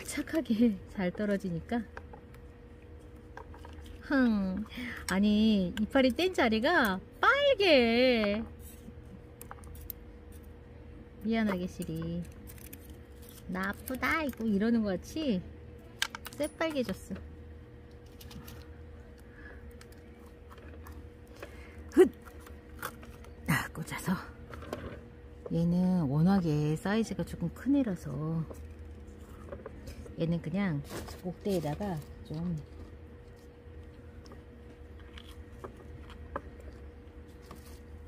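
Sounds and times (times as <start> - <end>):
faint steady hum: 0.0 - 38.0
gloved hands handling plants: 28.2 - 38.0.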